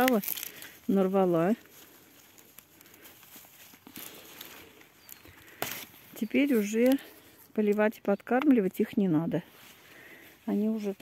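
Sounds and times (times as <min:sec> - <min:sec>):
rustling of leaves and stems: 0:00.0 - 0:11.0.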